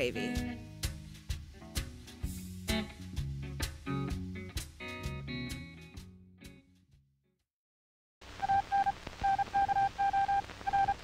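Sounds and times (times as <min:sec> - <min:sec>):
old film soundtrack hiss and crackle: 0:00.0 - 0:05.6, 0:08.2 - 0:11.0
electronic beeps: 0:08.4 - 0:11.0.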